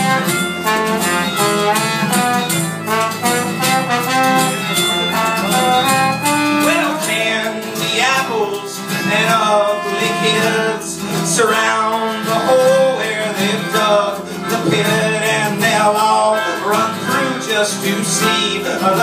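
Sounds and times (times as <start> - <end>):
sustained sliding melody line: 0.0 - 7.4
acoustic guitar strumming: 0.0 - 19.0
upright bass: 0.0 - 19.0.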